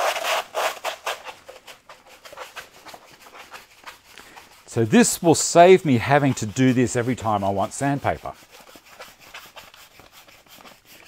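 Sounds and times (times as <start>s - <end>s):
sandpaper rustling and scraping: 0.0s - 11.0s.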